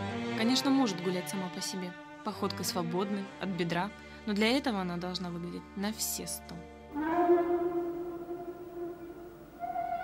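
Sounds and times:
long held soundtrack note: 0:06.9 - 0:10.0.

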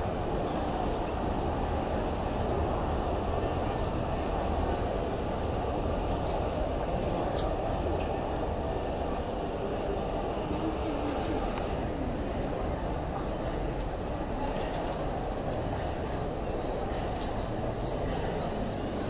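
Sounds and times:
murmur of voices: 0:00.0 - 0:19.0.

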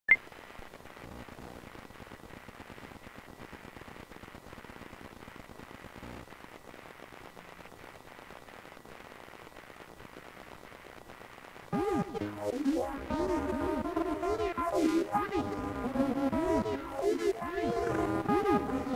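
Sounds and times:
static-like hiss: 0:00.1 - 0:18.9
electric guitar with bending notes: 0:11.8 - 0:18.9.

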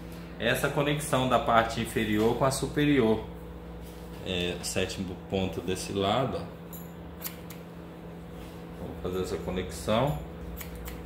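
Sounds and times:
scissors snipping hair: 0:06.7 - 0:07.6, 0:10.0 - 0:11.0.

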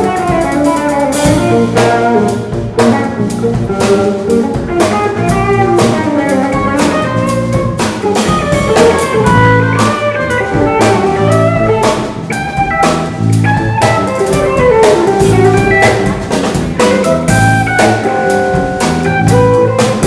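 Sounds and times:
drum and cymbal hits: 0:00.0 - 0:20.0
electric guitars playing: 0:00.0 - 0:20.0.

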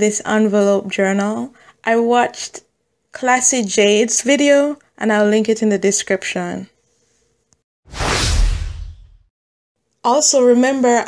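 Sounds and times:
whoosh transition effect: 0:07.9 - 0:09.3.

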